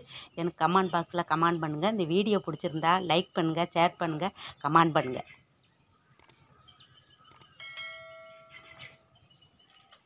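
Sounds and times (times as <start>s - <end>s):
short clicks: 6.2s - 6.4s, 7.3s - 7.5s
bell chime: 7.6s - 9.1s.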